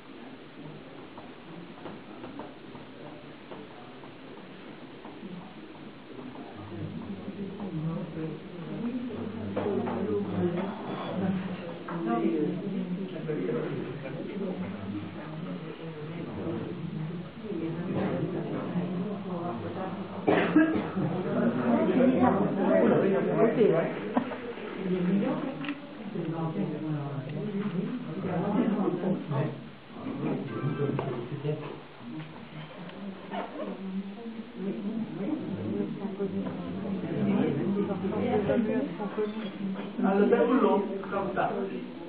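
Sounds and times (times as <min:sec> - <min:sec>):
faint room murmur: 0:00.0 - 0:42.0
person coughing: 0:20.3 - 0:21.0.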